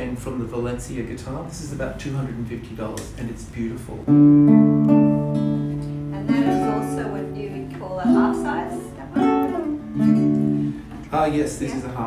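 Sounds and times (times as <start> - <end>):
nylon-string guitar strummed chords: 4.1 - 10.9.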